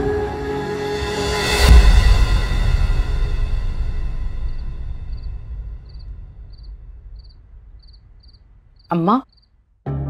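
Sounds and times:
crickets chirping: 4.4s - 9.6s
woman speaking: 8.9s - 9.2s.

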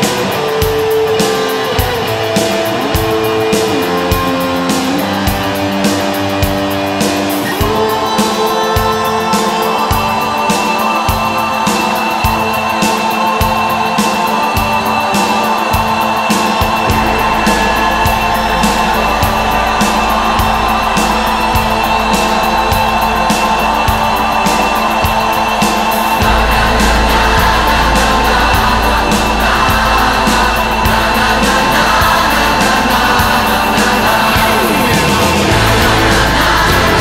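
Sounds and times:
pop-rock band playing: 0.0s - 37.0s
deep bass: 16.9s - 37.0s.

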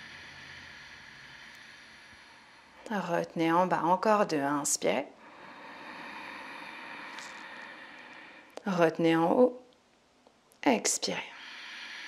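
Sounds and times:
woman inhaling slowly: 0.0s - 2.9s, 5.2s - 8.6s, 11.3s - 12.0s.

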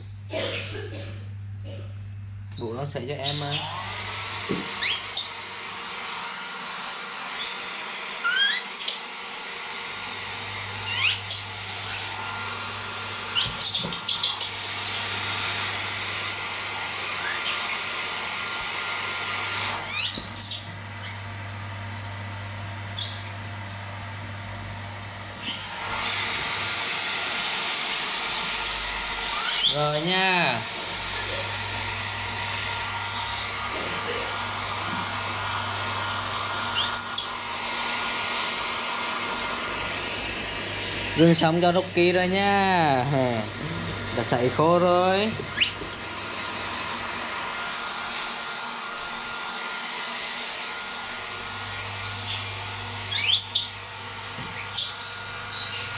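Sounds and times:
hair dryer running: 0.0s - 55.9s
baby monkey squealing: 4.8s - 5.3s, 8.2s - 9.0s, 10.9s - 12.2s, 12.8s - 15.0s, 19.9s - 22.0s, 29.0s - 30.0s, 36.8s - 37.3s, 45.6s - 46.0s, 53.1s - 53.7s, 54.6s - 55.8s.

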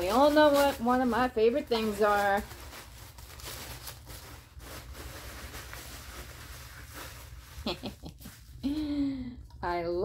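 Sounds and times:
gift wrapping rustling: 0.0s - 9.2s.

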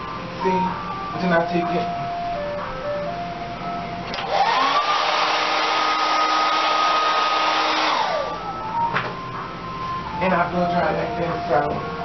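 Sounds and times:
hair dryer running: 4.0s - 9.2s.

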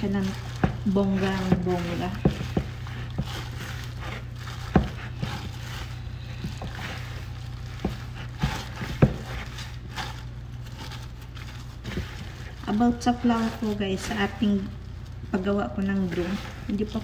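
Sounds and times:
dough squishing: 0.0s - 17.0s.

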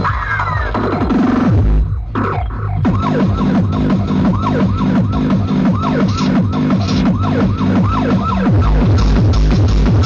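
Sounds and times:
siren-like synth riff: 0.0s - 10.0s
heavy kick drum: 2.8s - 10.0s.

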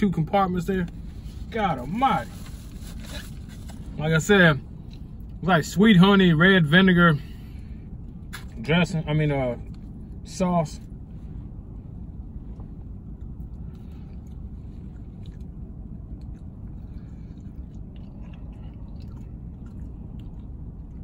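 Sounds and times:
low hum in car cabin: 0.0s - 21.0s
man chewing food: 12.3s - 21.0s.

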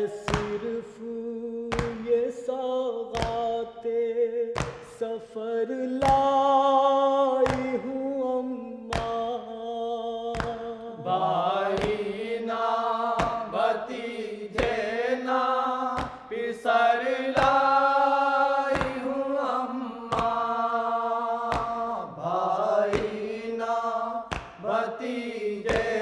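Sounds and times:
voices chanting in chorus: 7.1s - 8.0s, 10.0s - 26.0s.

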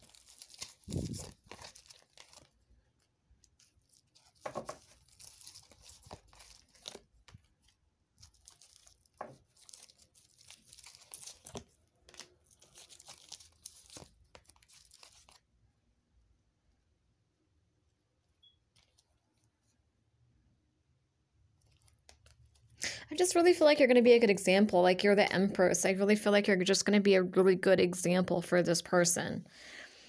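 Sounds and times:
cards rustling and sliding: 0.0s - 2.6s, 3.6s - 15.4s.

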